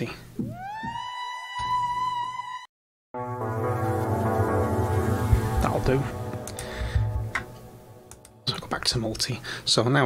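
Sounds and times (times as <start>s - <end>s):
synthesizer note sliding up: 3.2s - 8.3s.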